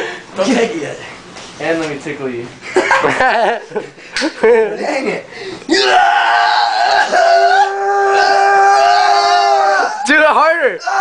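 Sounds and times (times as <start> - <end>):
young man screaming: 5.7 - 11.0.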